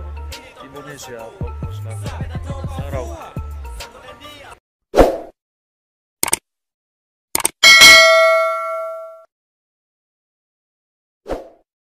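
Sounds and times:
bright bell ding: 7.6 - 9.3.

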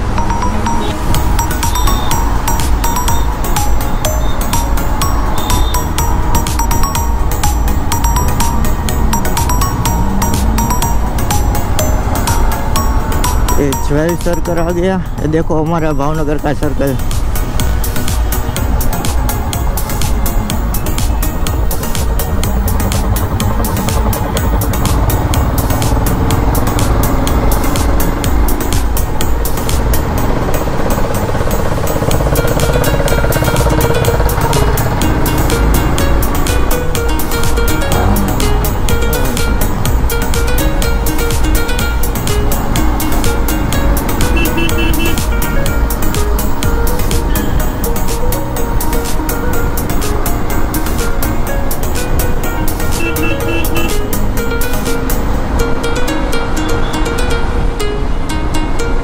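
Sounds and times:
motorcycle engine running: 0.0 - 14.1, 17.0 - 55.8
background music: 0.0 - 59.0
wind and road noise: 0.0 - 59.0.

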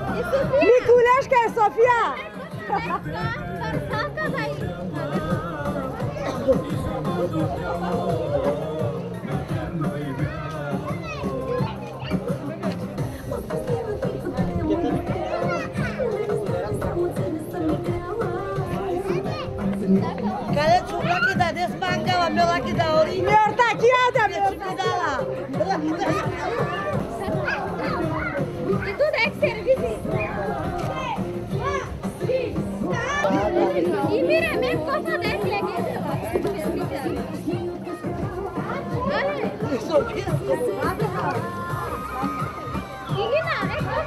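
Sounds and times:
music playing: 0.0 - 44.0
people talking and calling out: 0.0 - 44.0.

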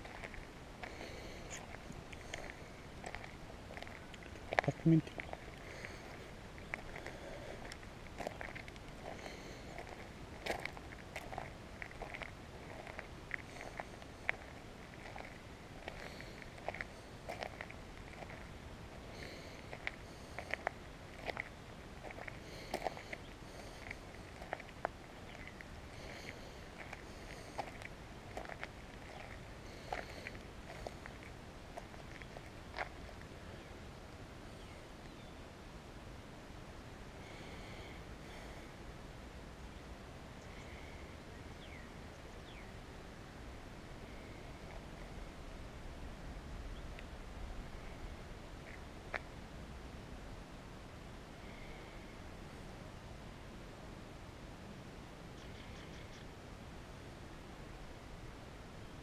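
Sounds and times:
footsteps on gravel: 0.0 - 33.3.

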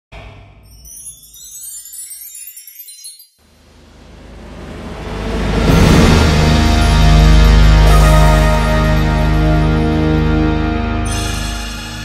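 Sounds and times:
swelling riser: 0.2 - 9.0
sparkly chime-like tinkling: 0.6 - 3.5, 11.0 - 12.0.

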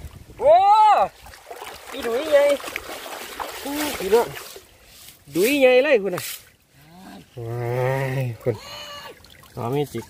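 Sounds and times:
man exclaiming wow: 0.4 - 1.1
water trickling through net: 1.1 - 6.6.

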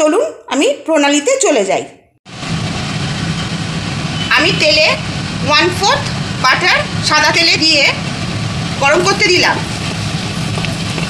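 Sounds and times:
butter and oil sizzling: 5.0 - 11.0.

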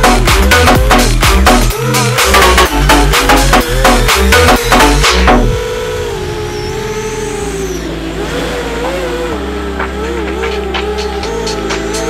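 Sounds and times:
quadcopter motors whining: 0.0 - 12.0.

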